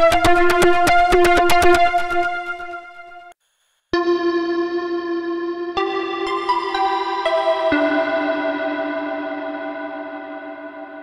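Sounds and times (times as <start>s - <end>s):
bright synthesizer tone: 4.0s - 11.0s.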